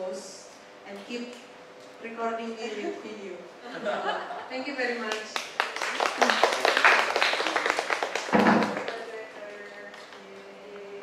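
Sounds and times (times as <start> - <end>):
audience clapping: 5.1 - 10.6.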